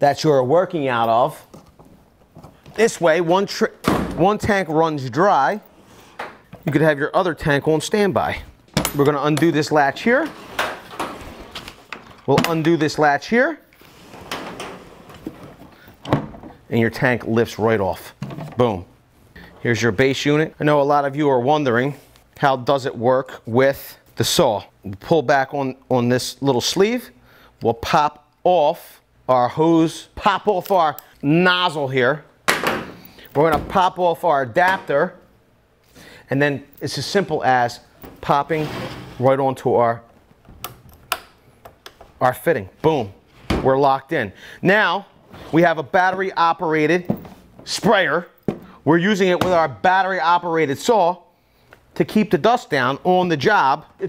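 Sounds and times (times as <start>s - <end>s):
handling noise: 47.0s - 49.8s.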